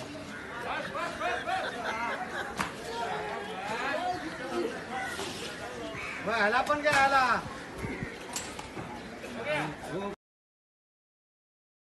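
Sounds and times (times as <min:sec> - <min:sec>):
indistinct chatter of voices: 0:00.0 - 0:10.2.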